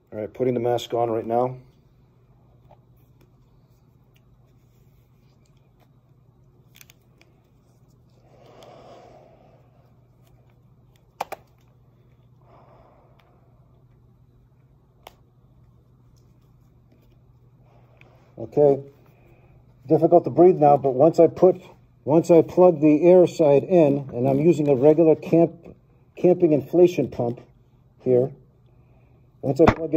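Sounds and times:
low steady hum: 0.0s - 29.9s.

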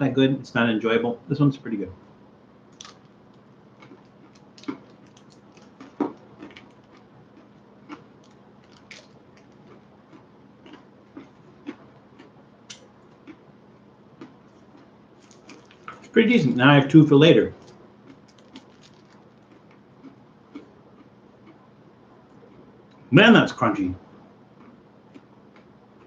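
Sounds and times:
crunchy candy chewing: 2.7s - 16.6s, 17.5s - 21.7s, 24.6s - 26.0s.

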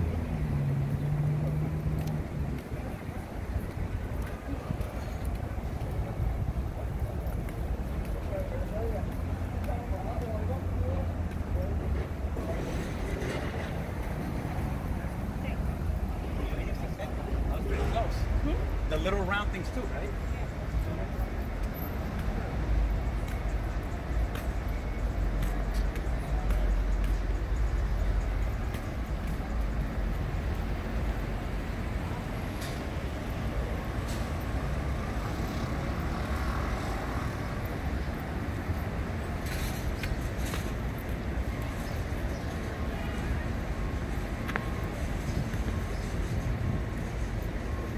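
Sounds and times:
pedestrians' voices: 0.0s - 47.9s
road traffic rumble: 0.0s - 47.9s.

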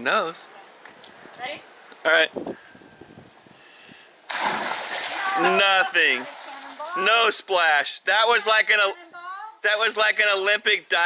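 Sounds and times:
body splashing into water: 4.3s - 7.0s
churning water: 4.3s - 7.3s.

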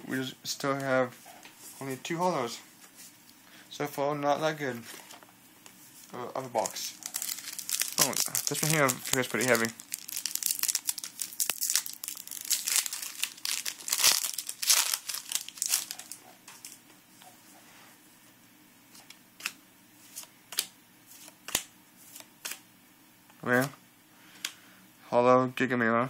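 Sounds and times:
foil pack tearing and crinkling: 6.5s - 16.2s
cards clicking: 19.0s - 22.6s.

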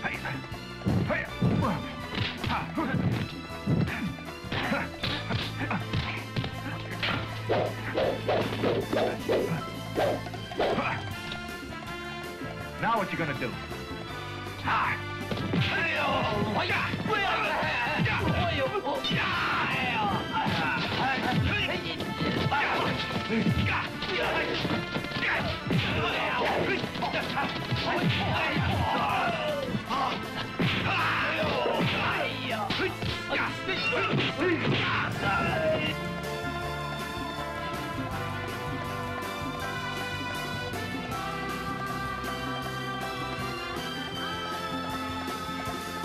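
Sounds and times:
film score music: 0.0s - 46.0s
fighters shouting: 14.6s - 36.0s
punch and strike sound effects: 22.2s - 29.2s, 30.6s - 32.3s.

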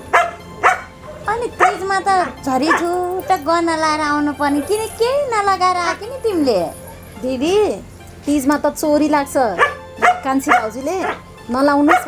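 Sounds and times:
dog barking: 0.1s - 1.9s, 9.6s - 11.2s
women's voices: 1.3s - 12.0s.

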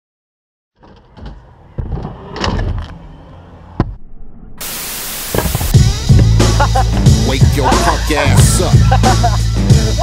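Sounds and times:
static hiss: 4.6s - 5.8s.

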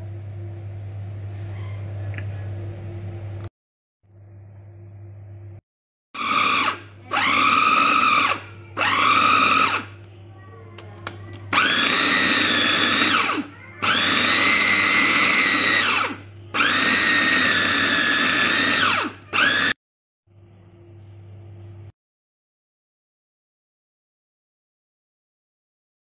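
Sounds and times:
electric food chopper whining: 6.2s - 10.0s, 11.0s - 19.8s.

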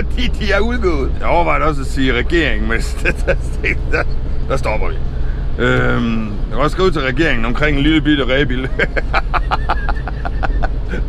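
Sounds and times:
van engine and tyres rumbling: 0.0s - 11.0s
man laughing: 2.7s - 4.1s, 8.4s - 11.0s.

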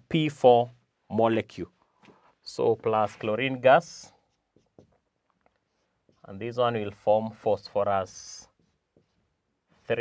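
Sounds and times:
marker pen on whiteboard: 0.6s - 10.0s.

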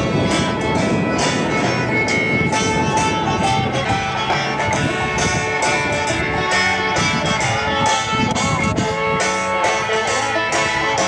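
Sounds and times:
acoustic guitar: 0.0s - 11.0s
acoustic string band playing: 0.0s - 11.0s.

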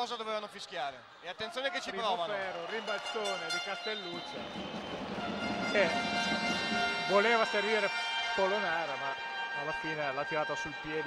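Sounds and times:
basketball game noise: 0.0s - 11.0s.

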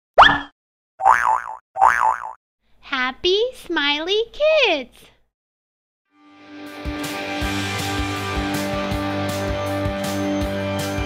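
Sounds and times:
springy cartoon boings: 0.2s - 2.4s.

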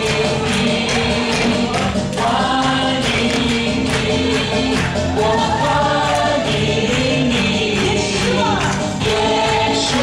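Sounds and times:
group of voices singing: 0.0s - 10.0s
music accompaniment with steady beat: 0.0s - 10.0s.

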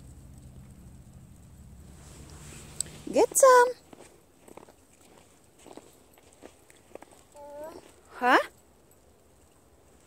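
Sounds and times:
footsteps crunching in snow: 2.0s - 8.1s.

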